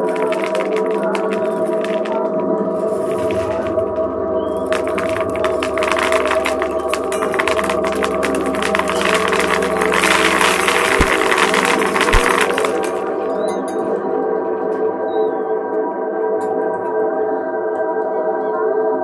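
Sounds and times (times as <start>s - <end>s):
crackling rattling noise: 0.0s - 14.8s.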